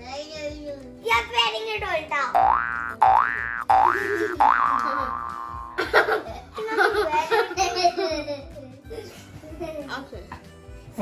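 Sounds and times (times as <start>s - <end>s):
cartoon boing sound effect: 2.4s - 5.8s
voices or laughter: 4.8s - 10.5s.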